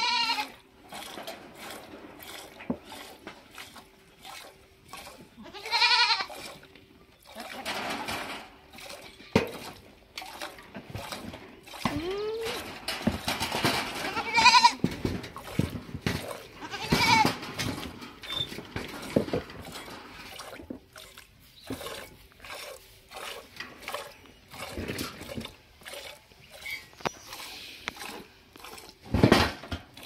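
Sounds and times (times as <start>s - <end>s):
goat bleating: 0.0s - 0.6s, 5.4s - 6.4s, 14.0s - 14.8s, 16.5s - 17.4s
milk squirting into steel pot: 8.7s - 12.6s, 17.8s - 29.1s.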